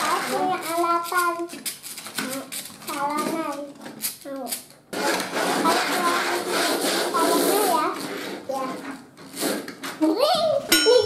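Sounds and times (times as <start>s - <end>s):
young children talking: 0.0s - 1.5s, 2.2s - 9.0s, 10.0s - 11.0s.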